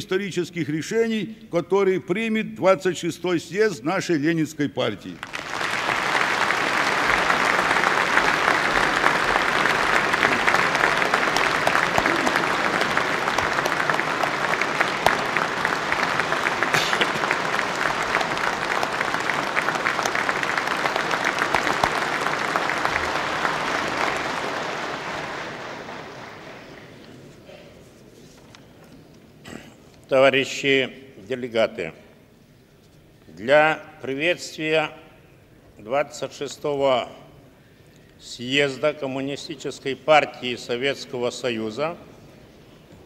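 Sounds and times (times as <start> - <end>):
large audience applauding: 5.2 - 27.2.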